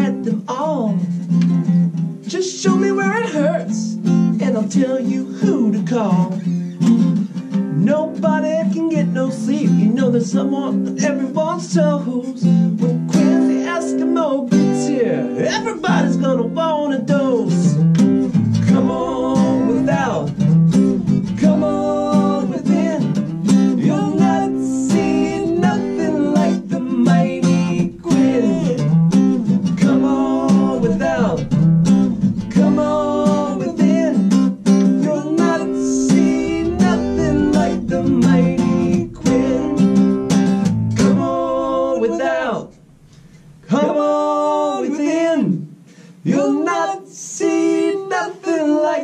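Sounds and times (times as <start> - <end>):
man singing: 0.0 - 1.1, 2.2 - 6.5, 7.7 - 17.8, 18.4 - 42.8, 43.7 - 45.6, 46.2 - 49.0
acoustic guitars strummed and picked: 0.0 - 49.0.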